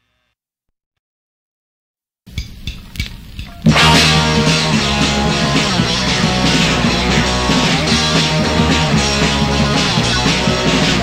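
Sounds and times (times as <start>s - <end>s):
drum hits: 3.4s - 11.0s
punk rock song: 3.6s - 11.0s
low bass notes: 3.7s - 11.0s.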